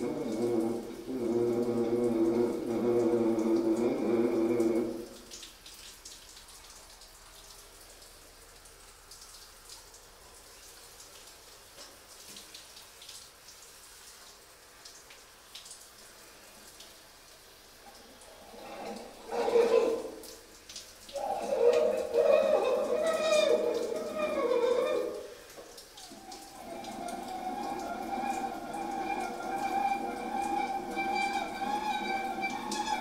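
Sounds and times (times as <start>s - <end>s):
faint room hiss: 0.0s - 33.0s.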